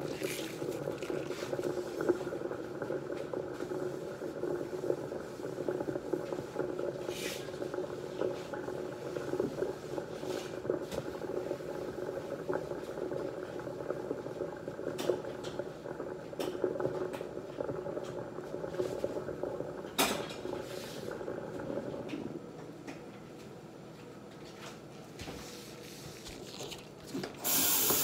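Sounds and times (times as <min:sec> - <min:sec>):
soap foam fizzing and crackling: 0:00.0 - 0:22.0, 0:25.5 - 0:28.0.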